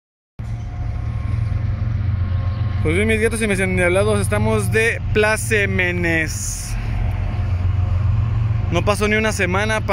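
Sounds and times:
diesel locomotive engine rumble: 0:00.4 - 0:09.9.

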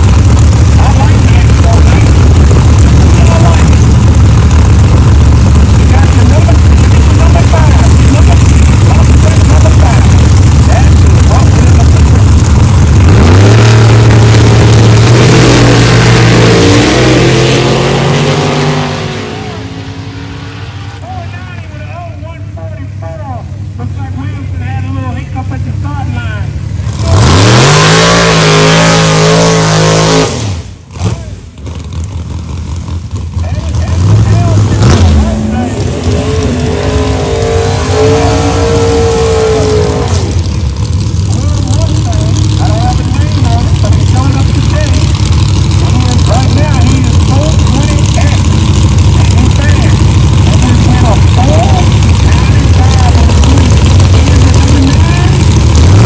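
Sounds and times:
racing car engines revving: 0:00.0 - 0:56.0.

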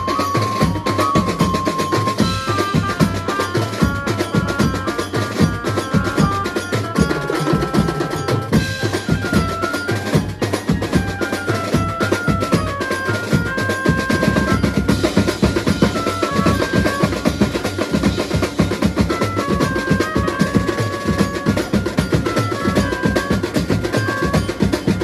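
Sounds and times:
band drumming: 0:00.0 - 0:25.0
high melody: 0:00.0 - 0:25.0.

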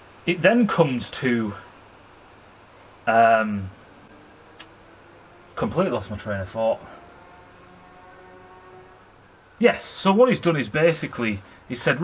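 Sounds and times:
low steady hum with thin tones: 0:00.0 - 0:12.0.

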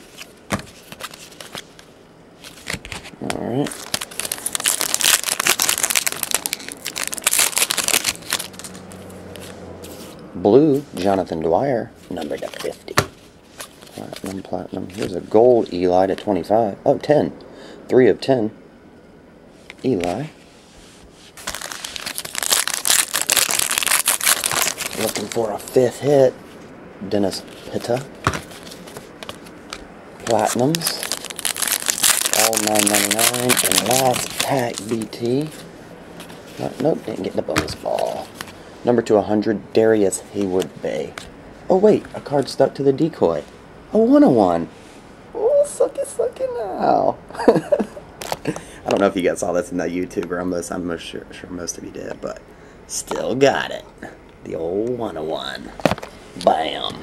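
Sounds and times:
foil wrapper tearing and crinkling: 0:03.7 - 0:09.0, 0:21.4 - 0:25.6, 0:30.2 - 0:35.5
card tapping down: 0:28.2 - 0:30.4.

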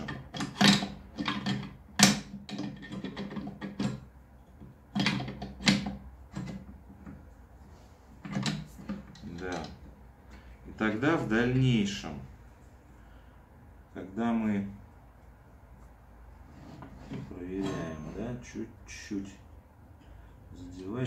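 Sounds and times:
metal clicks and knocks: 0:00.0 - 0:07.2.

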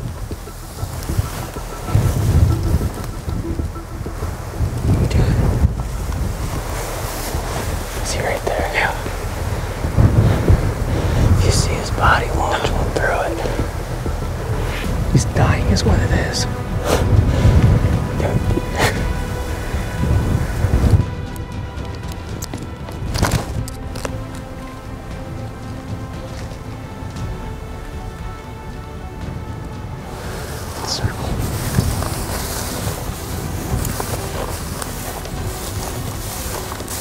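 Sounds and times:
faint music drone: 0:00.0 - 0:37.0
wind buffeting microphone: 0:00.0 - 0:37.0.

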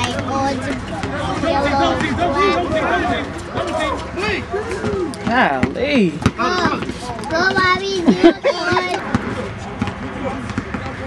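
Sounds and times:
people talking: 0:00.0 - 0:11.0
basketball bouncing on hard court: 0:04.9 - 0:06.9, 0:08.7 - 0:11.0.

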